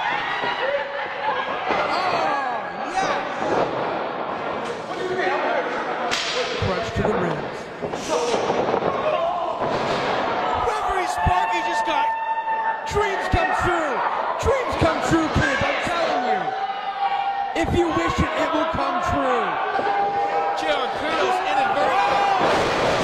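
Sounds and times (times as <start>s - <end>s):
crowd shouting and chattering: 0.0s - 23.0s.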